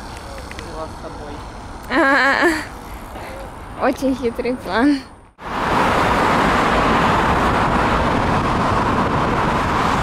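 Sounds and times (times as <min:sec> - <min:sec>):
busy road traffic: 0:00.0 - 0:10.0.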